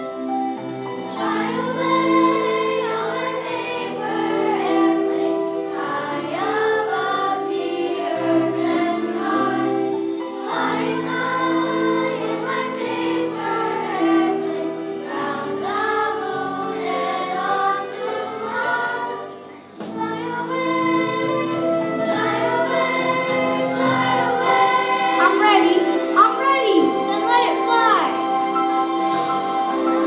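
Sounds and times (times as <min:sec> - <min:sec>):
children's choir singing: 0:00.0 - 0:30.0
musical accompaniment: 0:00.0 - 0:30.0.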